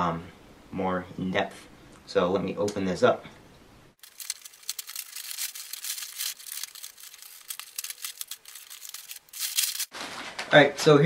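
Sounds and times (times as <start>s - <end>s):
plastic envelope tearing and crinkling: 4.0s - 10.4s.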